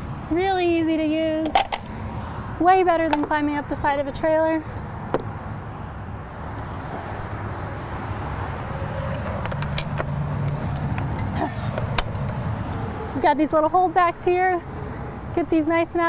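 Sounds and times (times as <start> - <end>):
vehicle engine rumbling: 0.0 - 16.0.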